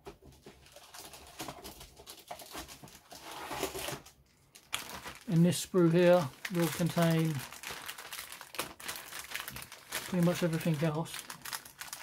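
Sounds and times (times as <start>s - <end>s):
plastic bag rustling and crinkling: 0.2s - 12.0s.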